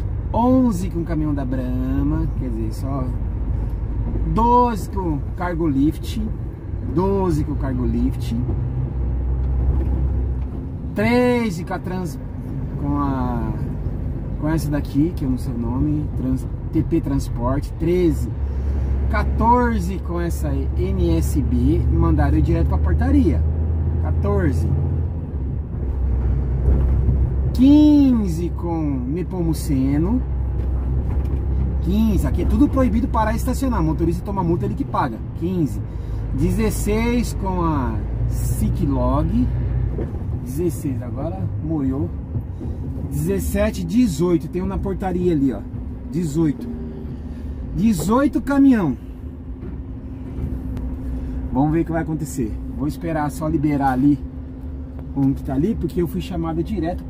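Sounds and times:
diesel truck engine rumbling: 0.0 - 57.0.

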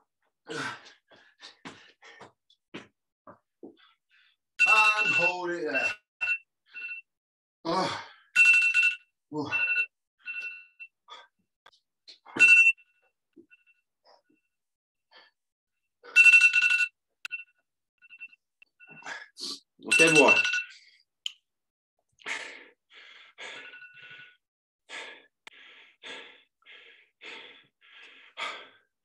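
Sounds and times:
person breathing hard: 0.5 - 2.4, 22.2 - 29.0.

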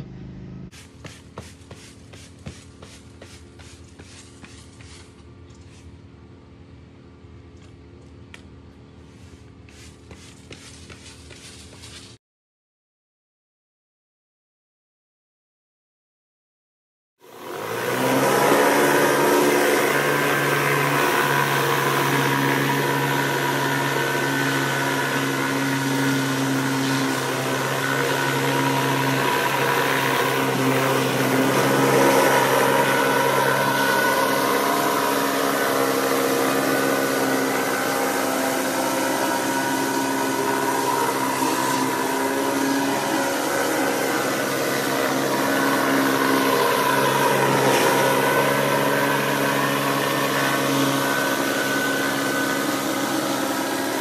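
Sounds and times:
pressure washer engine humming: 0.0 - 12.2, 17.2 - 54.0.

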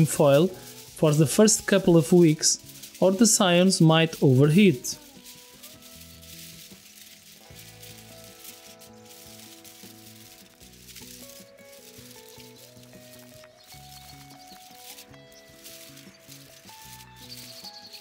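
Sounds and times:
aluminium foil crinkling: 0.0 - 18.0
soft background music: 0.0 - 18.0.

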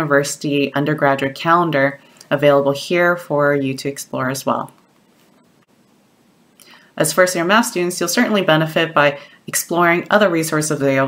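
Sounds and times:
person speaking: 0.0 - 5.6, 6.6 - 11.0
faint room hiss: 0.0 - 11.0
soft in-breath: 6.6 - 7.0.

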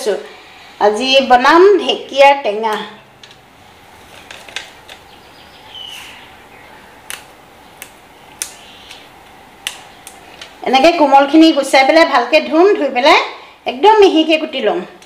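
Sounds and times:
woman talking: 0.0 - 3.0, 10.6 - 15.0
fern shoots snapping: 7.0 - 10.5.

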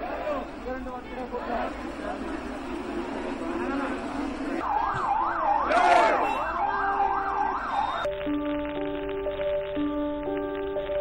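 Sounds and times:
crowd noise: 0.0 - 8.1
vehicle siren wailing: 4.6 - 8.1.

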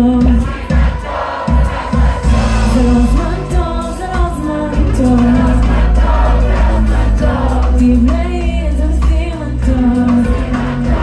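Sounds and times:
live band playing: 0.0 - 11.0
woman singing lead: 0.0 - 11.0.

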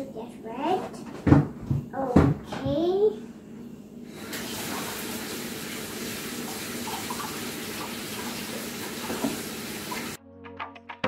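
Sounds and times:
water running from a tap: 4.1 - 10.2.

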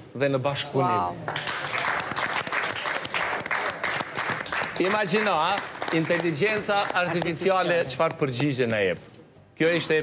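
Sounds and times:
audience applauding: 1.3 - 8.7.

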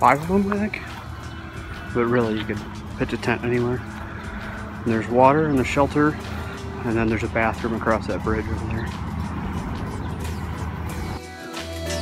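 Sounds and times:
steady low rumble: 0.0 - 11.2.

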